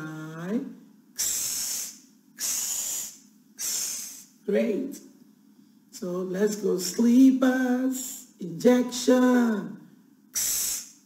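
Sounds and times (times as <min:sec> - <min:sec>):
woman making hissing sounds: 0:01.2 - 0:04.4, 0:10.3 - 0:11.0.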